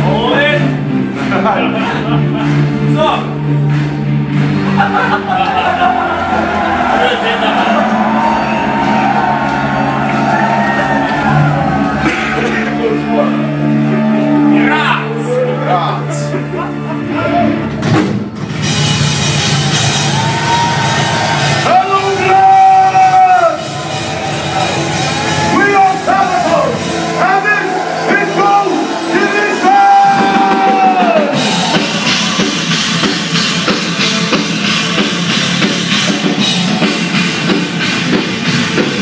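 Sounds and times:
drum kit: 0.0s - 15.0s, 16.6s - 39.0s
heavy metal band playing loudly: 0.0s - 39.0s
rock music: 0.0s - 39.0s.

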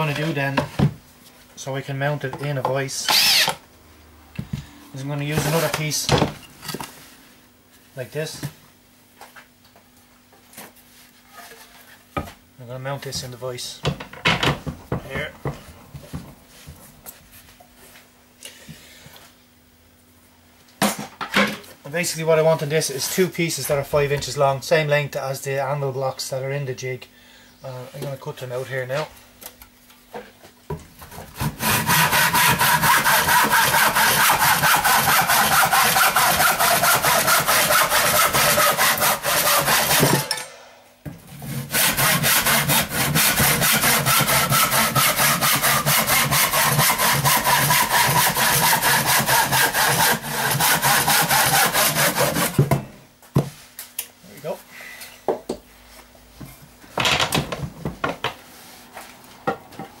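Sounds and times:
hand saw cutting wood: 3.0s - 3.6s, 5.3s - 5.9s, 31.1s - 40.4s, 41.3s - 52.8s.

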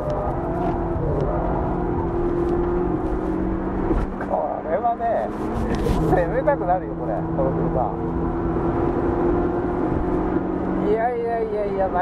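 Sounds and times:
car engine revving hard: 0.0s - 12.0s
road and tyre rumble: 0.0s - 12.0s.

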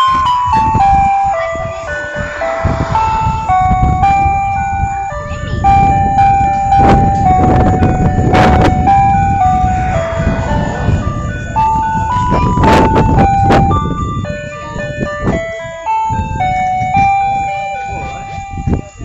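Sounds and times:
electronic chime melody: 0.0s - 15.0s
low rumble: 0.8s - 5.8s, 7.1s - 13.6s.

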